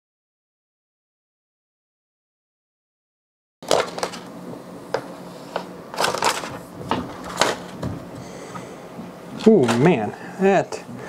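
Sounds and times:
paper liner crackling: 0:05.9 - 0:07.8.

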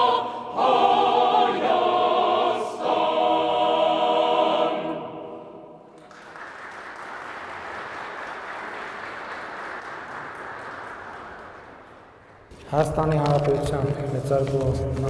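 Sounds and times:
mixed choir holding a chord: 0:00.0 - 0:06.0
audience applause: 0:06.0 - 0:12.5.

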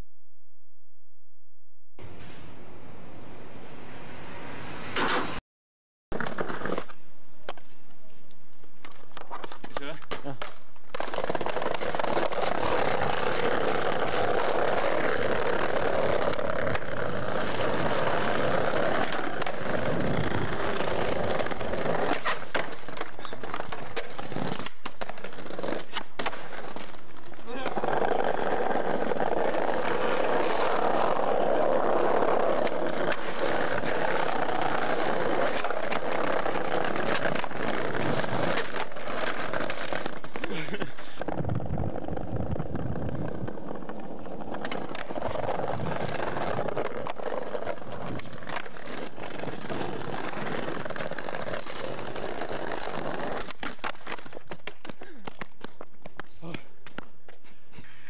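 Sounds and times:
skateboard wheels rolling on paving: 0:06.1 - 0:57.4
skateboard clacking on ground: 0:08.7 - 0:57.6.

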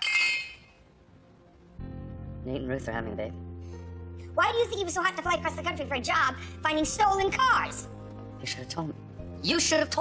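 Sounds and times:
low background music: 0:00.4 - 0:10.0.

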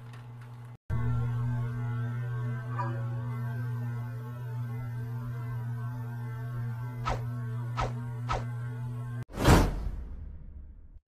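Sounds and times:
humming background track: 0:00.0 - 0:11.0.

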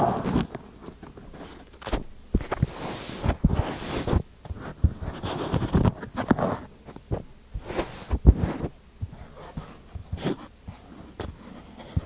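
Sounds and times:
sand rustling: 0:02.7 - 0:04.2.

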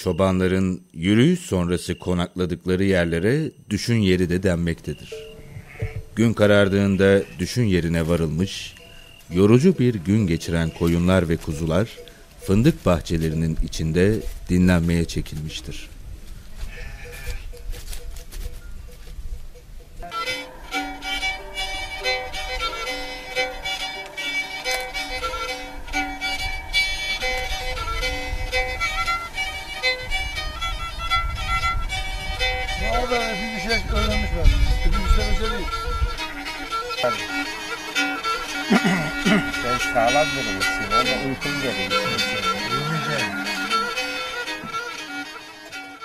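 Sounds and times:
bowed string folk tune: 0:04.8 - 0:16.0, 0:19.9 - 0:46.0
man's voice: 0:06.2 - 0:16.0, 0:32.8 - 0:35.7, 0:39.3 - 0:44.0.

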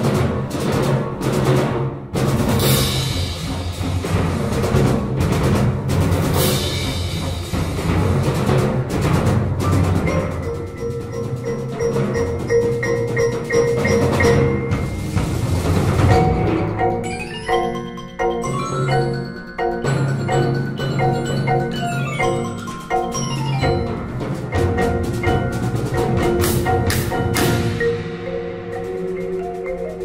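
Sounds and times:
timpani and drums pounding: 0:00.0 - 0:17.7, 0:18.4 - 0:30.0
mallet keyboard percussion: 0:02.3 - 0:30.0.

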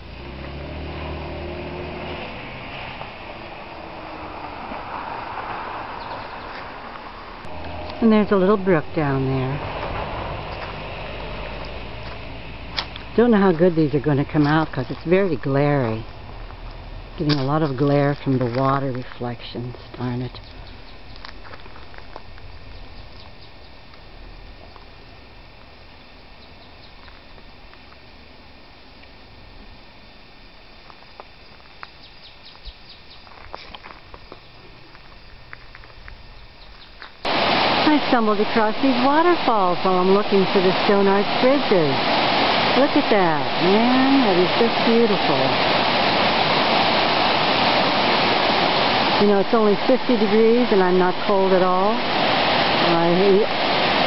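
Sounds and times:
brook flowing over stones: 0:37.3 - 0:54.0
waterfall rushing over rocks: 0:37.3 - 0:54.0.

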